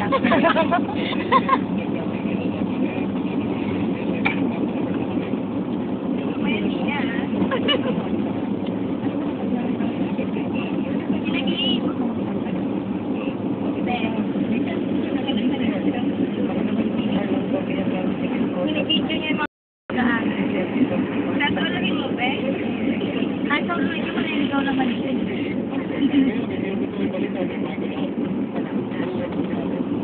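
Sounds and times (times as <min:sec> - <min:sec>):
car engine and road noise: 0:00.0 - 0:30.0
passengers chatting: 0:00.0 - 0:30.0.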